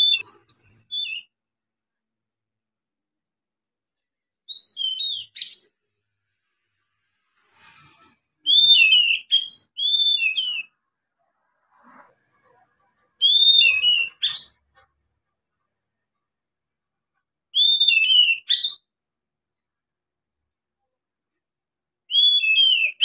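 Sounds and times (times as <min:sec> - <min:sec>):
bird singing whistled phrases: 0:00.0 - 0:01.3, 0:04.5 - 0:05.8, 0:08.4 - 0:10.7, 0:13.2 - 0:14.6, 0:17.5 - 0:18.9, 0:22.1 - 0:23.0.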